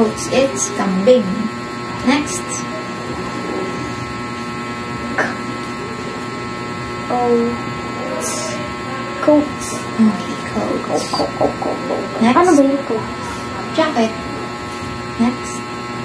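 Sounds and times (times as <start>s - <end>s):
steady electrical hum: 0.0s - 16.0s
person speaking quietly: 10.3s - 13.2s.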